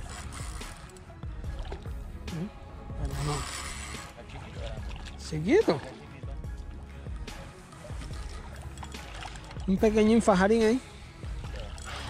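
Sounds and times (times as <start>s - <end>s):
fish splashing in water: 3.4s - 6.2s, 8.0s - 9.7s.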